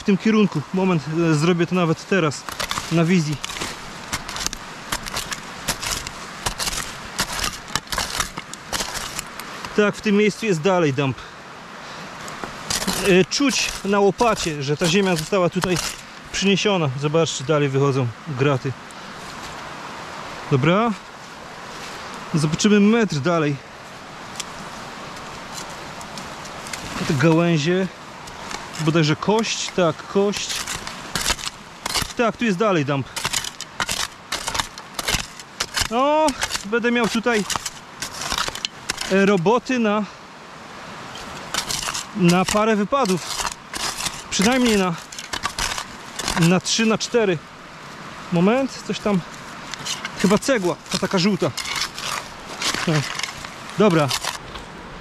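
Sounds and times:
spade scraping and crunching soil: 0:00.0 - 0:10.7, 0:12.2 - 0:17.5, 0:24.2 - 0:40.0, 0:41.1 - 0:47.4, 0:48.3 - 0:54.7
shovel digging in earth: 0:01.1 - 0:10.1, 0:12.5 - 0:16.7, 0:25.4 - 0:27.6, 0:28.3 - 0:39.6, 0:41.1 - 0:47.2, 0:48.4 - 0:54.7.

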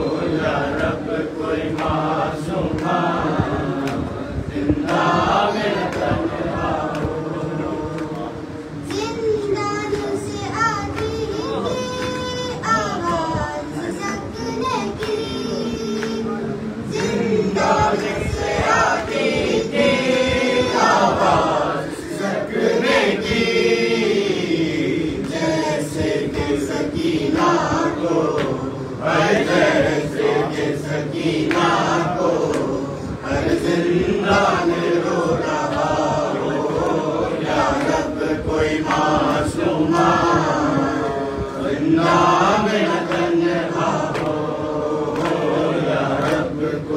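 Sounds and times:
male chorus singing a lament: 0:00.0 - 0:08.9, 0:15.2 - 0:46.9
voices chanting together: 0:00.0 - 0:46.9.

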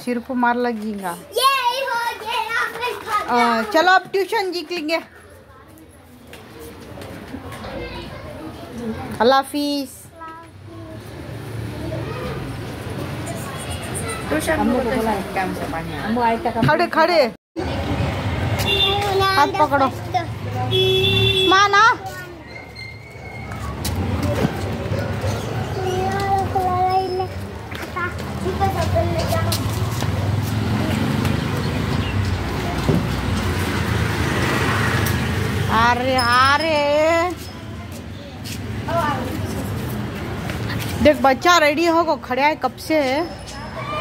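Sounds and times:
boys chattering: 0:00.7 - 0:44.0.

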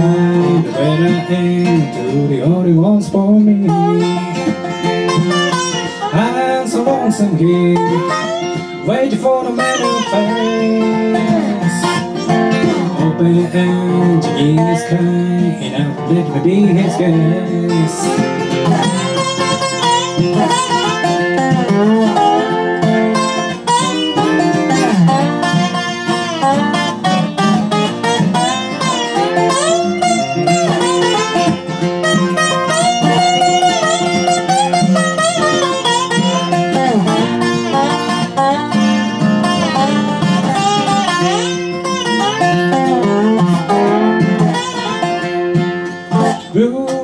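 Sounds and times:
acoustic guitar strumming: 0:00.0 - 0:47.0
sliding resonator guitar: 0:00.0 - 0:47.0.

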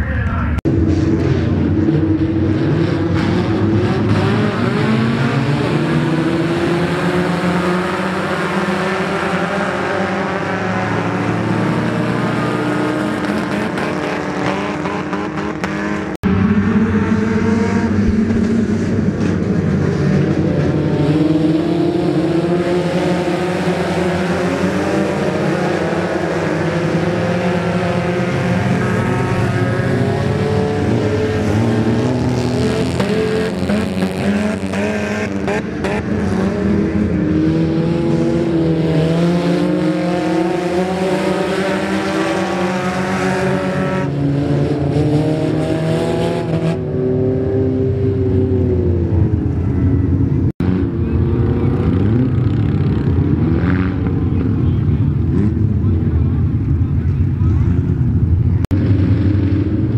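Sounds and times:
race car engines passing: 0:00.0 - 0:59.9.

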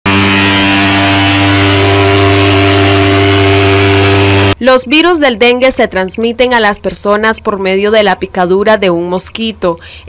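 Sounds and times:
fogging machine buzzing drone: 0:00.0 - 0:04.6.

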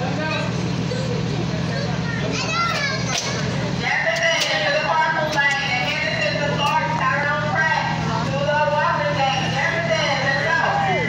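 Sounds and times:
children chattering and calling: 0:00.0 - 0:11.0
steady low hum: 0:00.0 - 0:11.0.

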